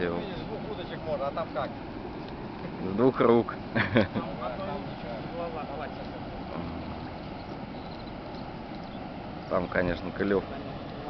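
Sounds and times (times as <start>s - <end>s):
rushing outdoor background noise: 0.0s - 11.0s.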